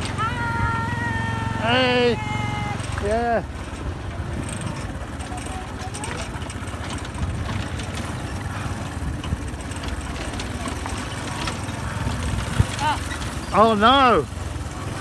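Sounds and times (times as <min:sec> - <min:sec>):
motorcycle engine drone: 0:00.0 - 0:15.0
knocks and rattles: 0:02.8 - 0:14.1.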